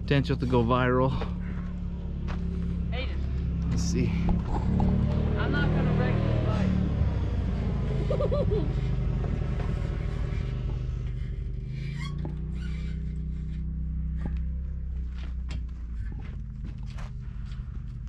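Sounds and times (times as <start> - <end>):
dirt bike engine idling: 0.0 - 6.6, 7.3 - 18.0.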